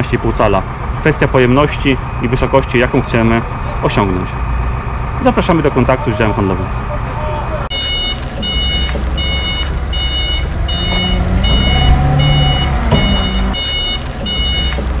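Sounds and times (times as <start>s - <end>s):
low engine rumble: 0.0s - 15.0s
reversing alarm beeping: 7.7s - 15.0s.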